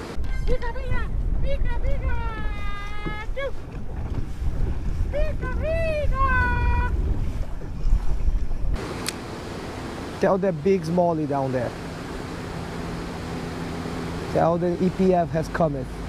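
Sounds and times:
wind rumble on microphone: 0:00.2 - 0:08.8
water under a boat: 0:01.1 - 0:08.8.

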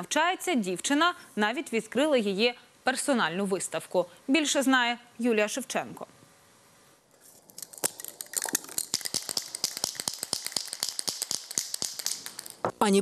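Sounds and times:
spray can rattling clicks: 0:07.6 - 0:12.7.

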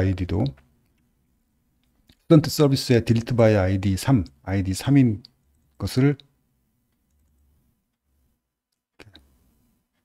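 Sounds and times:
room hum: 0:00.0 - 0:10.0
computer mouse clicking: 0:06.9 - 0:07.5.

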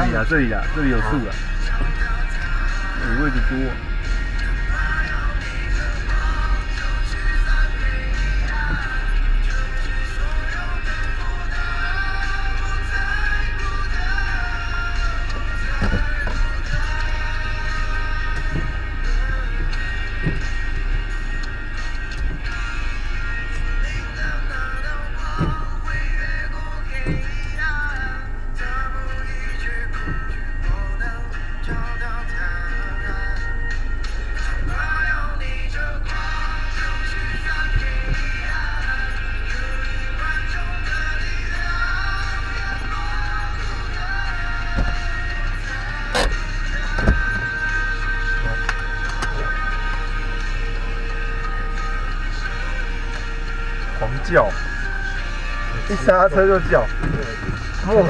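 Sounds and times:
car radio music with singing: 0:00.0 - 0:58.0
engine and road rumble: 0:00.0 - 0:58.0.

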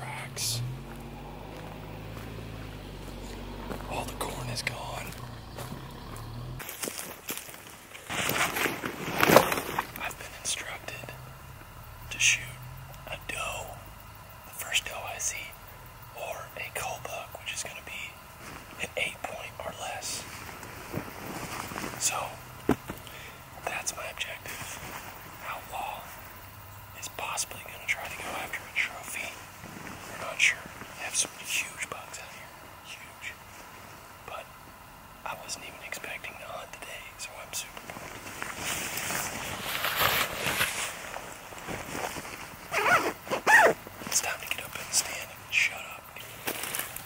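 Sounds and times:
man whispering: 0:00.0 - 0:06.3, 0:09.9 - 0:20.4, 0:22.0 - 0:22.4, 0:23.1 - 0:33.6, 0:34.2 - 0:34.6, 0:35.2 - 0:37.9, 0:44.0 - 0:46.5
jacket rustling: 0:38.1 - 0:44.0.

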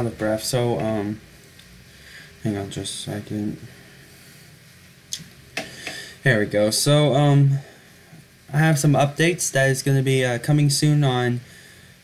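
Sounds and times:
man breathing heavily: 0:05.6 - 0:06.2.

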